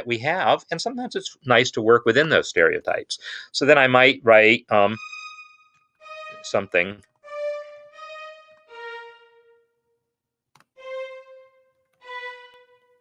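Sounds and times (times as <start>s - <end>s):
violin single notes: 4.8s - 9.7s, 10.6s - 13.0s.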